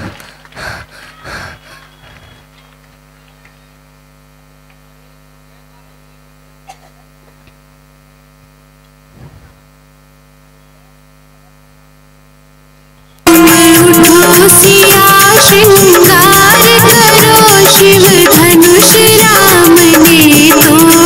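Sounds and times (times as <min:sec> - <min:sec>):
faint electrical mains hum: 0:00.0 - 0:13.4.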